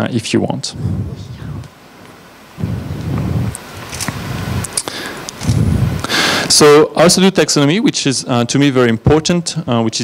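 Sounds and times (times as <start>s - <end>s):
microphone handling rumble: 0.8s - 1.8s, 2.6s - 4.8s, 5.4s - 6.1s.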